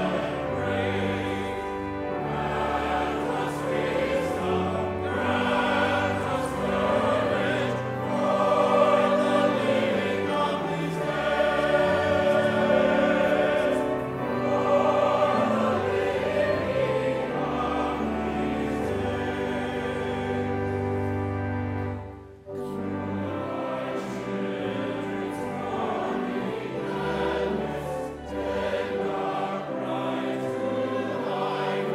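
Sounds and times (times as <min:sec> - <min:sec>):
church choir singing: 0:00.0 - 0:31.9.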